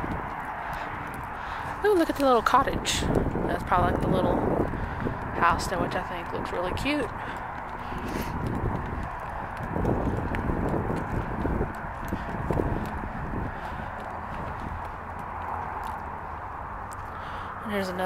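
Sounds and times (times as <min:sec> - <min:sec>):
footsteps on dry grass: 0:00.0 - 0:05.4, 0:06.8 - 0:17.1.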